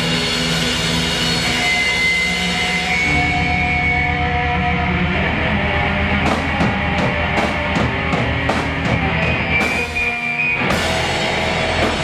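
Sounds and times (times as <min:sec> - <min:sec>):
bass and drums pulse: 0:00.0 - 0:12.0
distorted electric guitars droning: 0:00.0 - 0:12.0.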